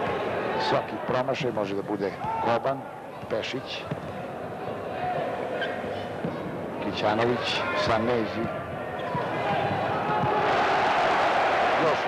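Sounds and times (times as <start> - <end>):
crowd cheering and shouting: 9.0 - 12.0.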